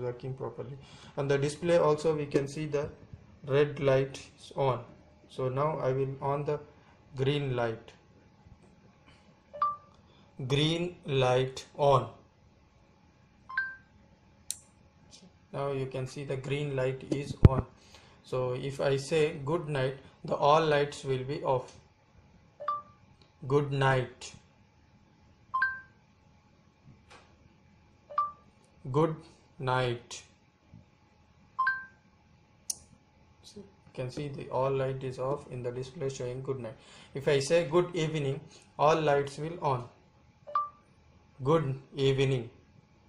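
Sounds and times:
two-note electronic beep: 9.6 - 9.9, 13.5 - 13.9, 22.6 - 23.0, 25.6 - 26.0, 28.1 - 28.4, 31.6 - 32.0, 40.5 - 40.8.

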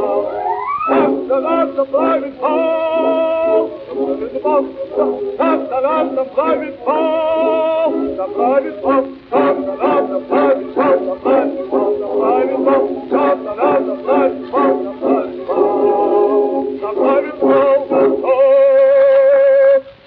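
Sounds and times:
bass-baritone singing opera aria: 0.0 - 20.0
musical accompaniment: 0.0 - 20.0.

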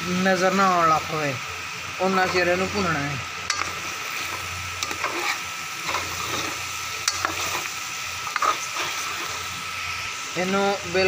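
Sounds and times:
meat sizzling in oil: 0.0 - 11.0
metal spoon scraping a pot: 3.5 - 9.4.

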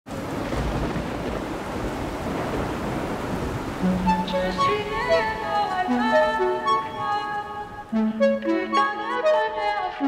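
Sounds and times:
low rumble of thunder: 0.1 - 5.4
heavy rain falling: 0.1 - 8.0
person singing: 4.0 - 10.0.

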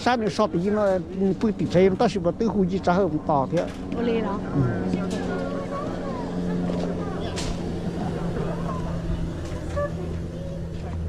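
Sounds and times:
people chatting: 0.0 - 11.0
steady low hum: 0.0 - 11.0.

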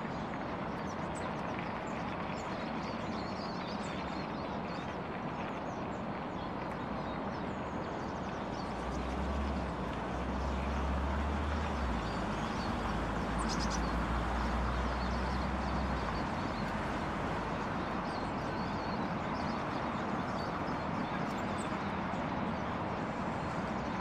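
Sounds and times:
distant traffic rumble: 4.4 - 24.0
small birds chirping: 6.7 - 24.0.

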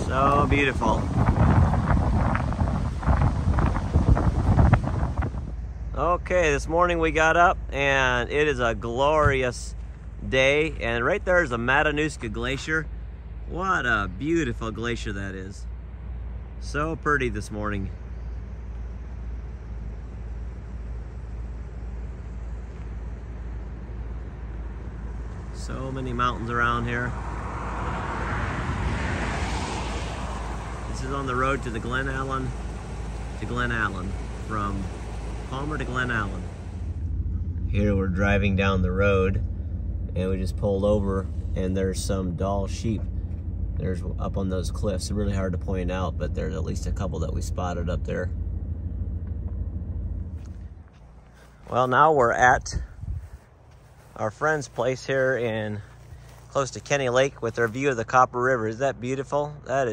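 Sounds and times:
wind buffeting microphone: 0.0 - 5.9, 52.4 - 53.6
vehicle passing on highway: 0.0 - 6.0, 9.7 - 59.7
steady low rumble: 0.0 - 59.9.

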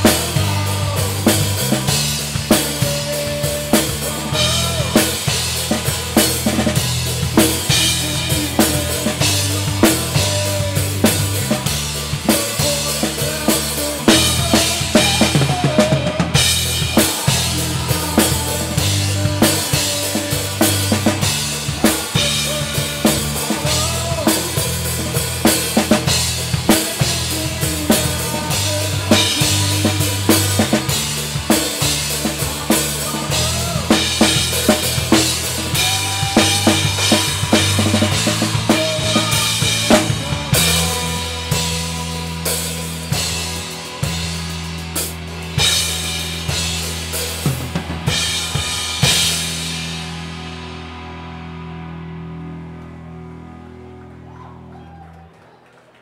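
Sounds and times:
acoustic drum kit playing: 0.0 - 51.1
bass guitar: 0.0 - 55.4
electric guitar: 0.0 - 55.8.

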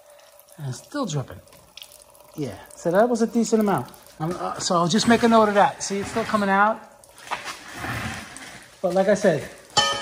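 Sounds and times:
fluid trickling: 0.0 - 9.8.

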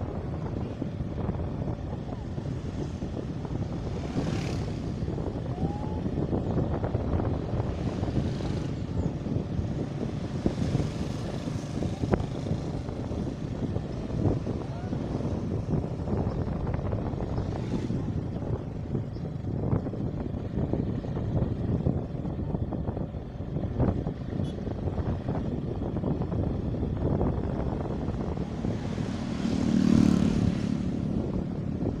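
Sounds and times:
wind buffeting microphone: 0.0 - 32.0.

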